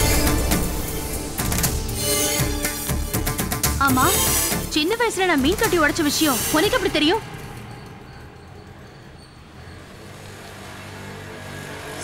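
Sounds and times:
low steady drone: 0:00.0 - 0:04.7.

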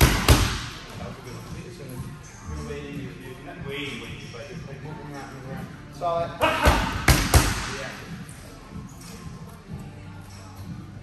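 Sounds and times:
boxing gloves smacking mitts: 0:00.0 - 0:00.8, 0:06.4 - 0:07.8.

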